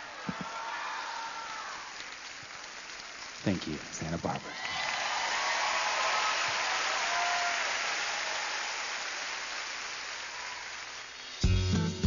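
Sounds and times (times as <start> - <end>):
audience clapping: 0.0 - 11.4.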